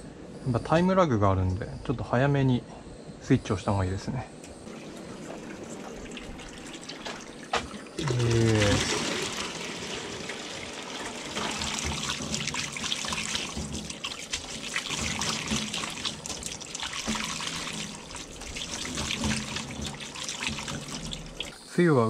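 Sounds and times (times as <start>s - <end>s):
hands rinsing noodles: 4.7s - 21.6s
water splashing from hose: 4.7s - 21.7s.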